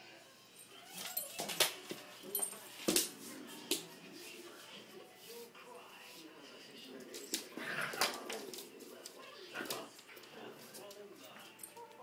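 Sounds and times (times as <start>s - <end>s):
dogs scuffling on wooden floor: 7.0s - 12.0s.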